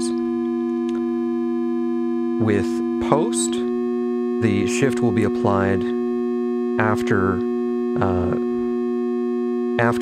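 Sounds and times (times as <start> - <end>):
smooth synthesizer tone: 0.0 - 10.0.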